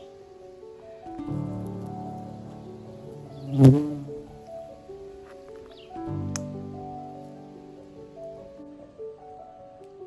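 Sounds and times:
music with long held notes: 0:00.0 - 0:10.0
bumblebee buzzing: 0:01.3 - 0:04.8.

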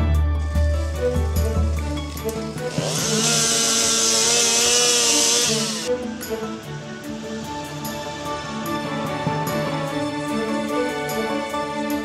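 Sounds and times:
background music: 0:00.0 - 0:12.0
chainsaw revving: 0:01.7 - 0:05.9.

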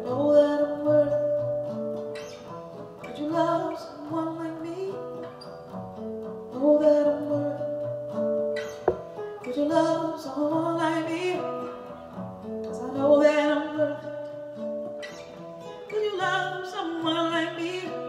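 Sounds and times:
acoustic guitar: 0:00.0 - 0:18.0.

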